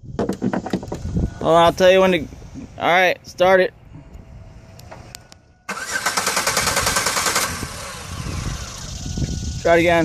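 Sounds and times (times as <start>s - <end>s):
van engine starting with rattle: 5.7s - 9.6s.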